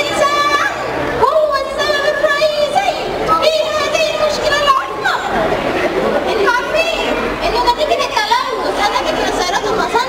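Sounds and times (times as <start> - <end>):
girls chattering: 0.0 - 10.0.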